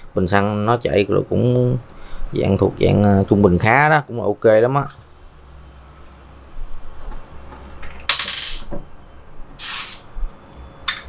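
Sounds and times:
small metal parts scraping: 7.8 - 8.7, 9.6 - 10.0.

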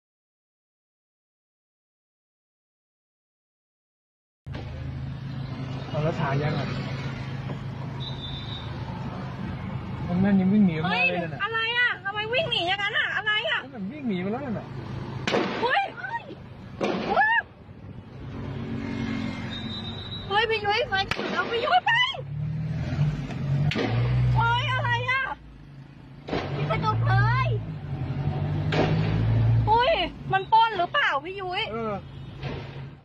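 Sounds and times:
car engine humming: 4.5 - 31.9
road noise inside car: 4.5 - 33.0.

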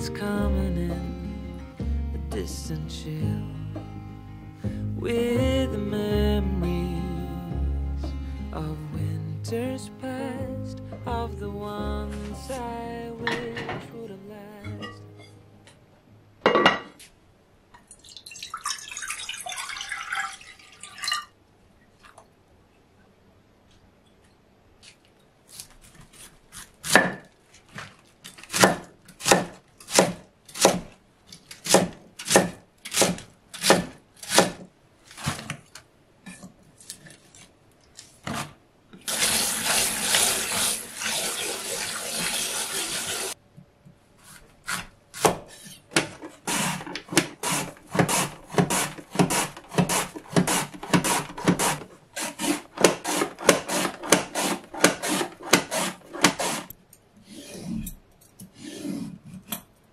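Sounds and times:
tap water running: 18.0 - 21.3, 39.0 - 43.4
knife chopping on wooden board: 28.5 - 30.9, 31.6 - 34.6, 44.3 - 56.7.

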